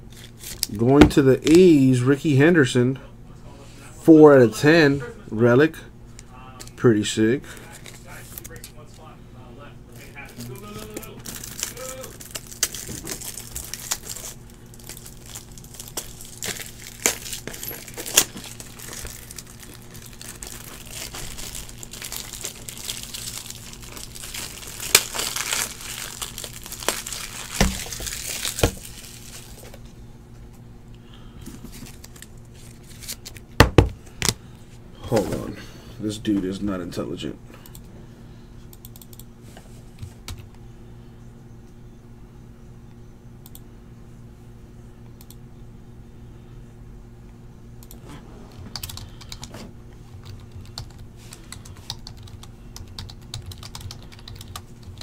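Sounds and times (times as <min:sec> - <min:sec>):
plastic crinkling: 0:09.9 - 0:29.9, 0:31.5 - 0:33.5.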